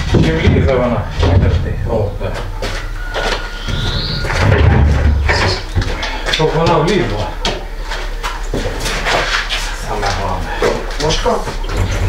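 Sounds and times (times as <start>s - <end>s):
knocks and clatter of freezer: 0.0s - 1.8s, 3.3s - 7.7s
low steady hum: 0.0s - 12.0s.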